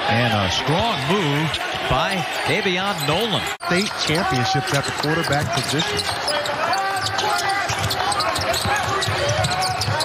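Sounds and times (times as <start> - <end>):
sneakers squeaking on floor: 2.4 - 10.0
basketball dribbling on hardwood: 7.0 - 10.0.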